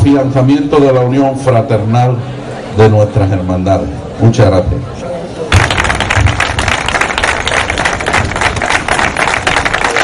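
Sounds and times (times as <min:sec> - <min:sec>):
audience applauding: 0:05.5 - 0:10.0.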